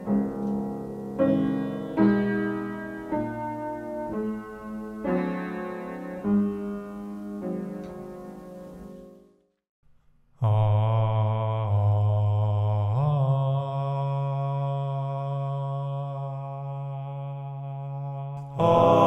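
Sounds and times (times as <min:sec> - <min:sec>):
piano notes: 0:00.0 - 0:09.4
man singing long low note: 0:10.4 - 0:19.0
overdubbed voices singing chord: 0:10.4 - 0:19.0.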